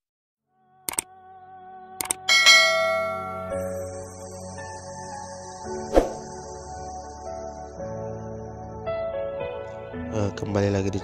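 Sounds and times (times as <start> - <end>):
bell sound effect ringing: 2.3 - 3.9.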